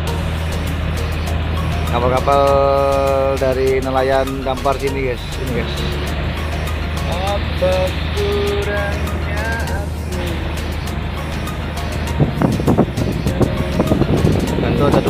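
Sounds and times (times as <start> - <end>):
boat engine droning: 0.0 - 15.0
person speaking: 1.9 - 6.2, 7.0 - 10.8.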